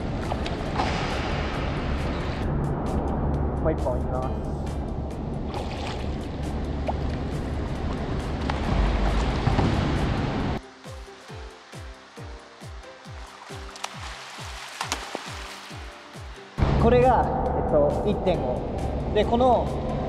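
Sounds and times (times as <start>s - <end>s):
pool water splashing: 0.0s - 2.4s, 5.4s - 16.6s.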